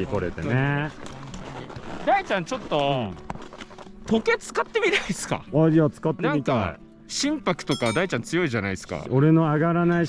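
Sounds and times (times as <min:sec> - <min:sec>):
footsteps crunching on snow: 0:00.0 - 0:05.1
men talking: 0:04.1 - 0:10.0.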